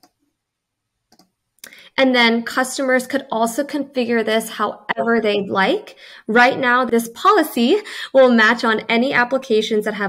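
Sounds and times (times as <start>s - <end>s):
computer mouse clicks: 1.1s - 1.8s.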